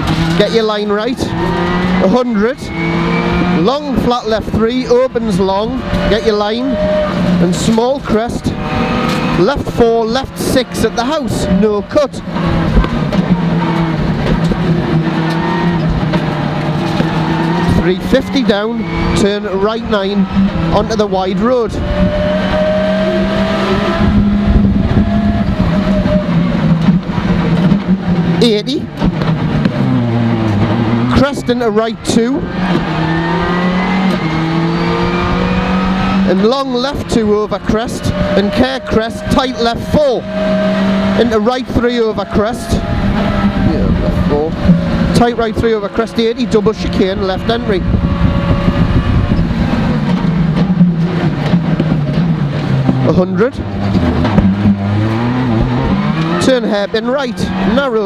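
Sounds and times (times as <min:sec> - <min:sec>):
rally car engine under load: 0:00.0 - 0:58.0
road and tyre rumble: 0:00.0 - 0:58.0.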